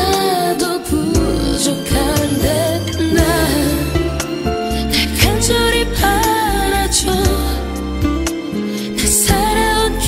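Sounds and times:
woman singing with vibrato: 0.0 - 7.6
bass: 0.0 - 10.0.

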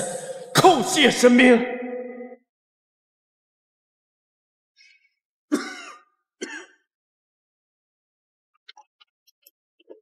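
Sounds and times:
man coughing: 5.5 - 6.9.

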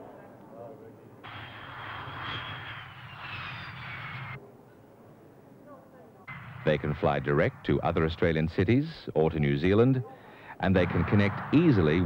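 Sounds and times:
falling jet whine: 1.2 - 4.4
jet engines roaring: 1.3 - 4.4, 10.8 - 12.0.

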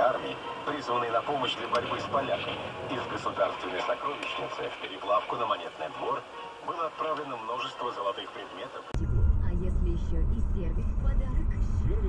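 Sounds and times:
indistinct talking: 0.0 - 12.0.

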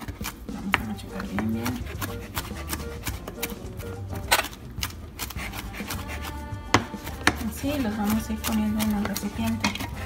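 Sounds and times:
knife chopping on plastic board: 0.0 - 10.0.

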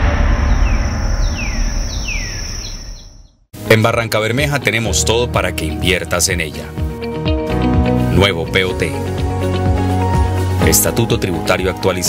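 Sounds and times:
descending chirps: 0.0 - 3.5
low rumble: 0.0 - 3.5.

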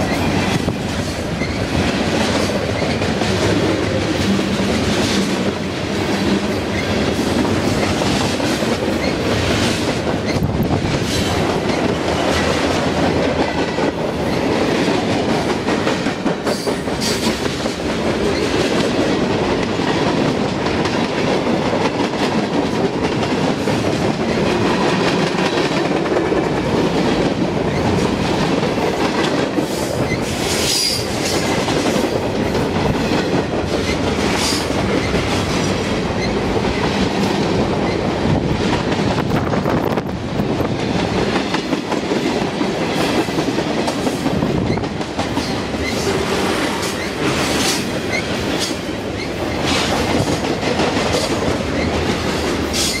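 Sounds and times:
freight train rumbling past: 0.0 - 53.0.

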